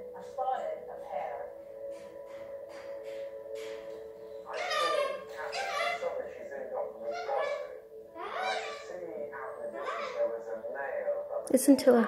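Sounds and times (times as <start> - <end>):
parrot chattering: 3.7 - 6.3, 7.0 - 9.0, 9.6 - 10.3.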